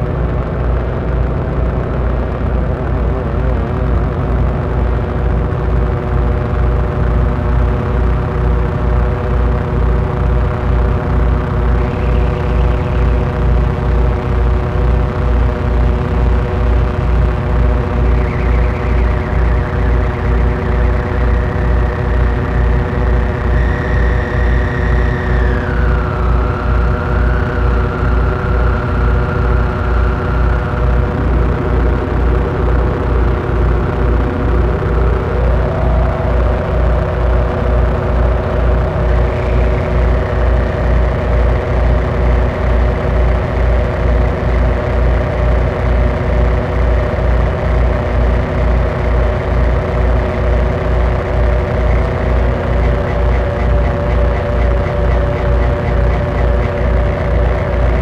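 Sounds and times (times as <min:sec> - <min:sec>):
droning synth tones: 0:00.0 - 0:58.0
fast low synth pulse: 0:00.0 - 0:58.0
high synth tone sliding down: 0:07.3 - 0:58.0
synth tone sliding up: 0:09.1 - 0:58.0.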